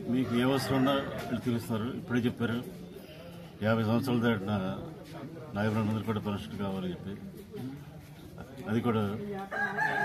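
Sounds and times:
man talking: 3.6 - 7.4
rooster crowing: 9.5 - 10.0.

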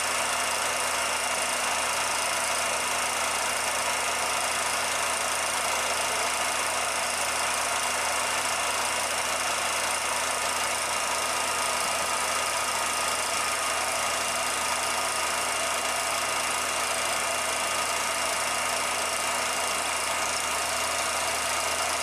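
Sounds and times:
film projector whirring: 0.0 - 22.0.

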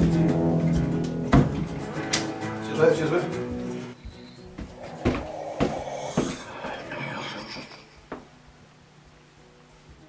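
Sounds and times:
footsteps on hallway floor: 3.5 - 7.0.

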